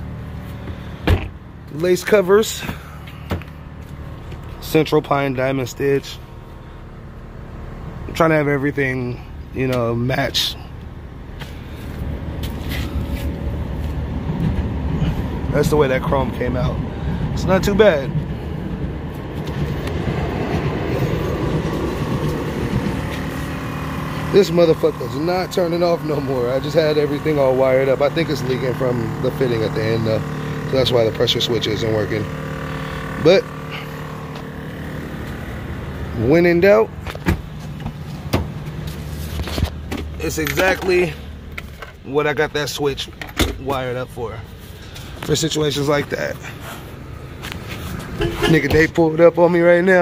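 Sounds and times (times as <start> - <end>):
low mechanical hum: 0.0 - 49.6.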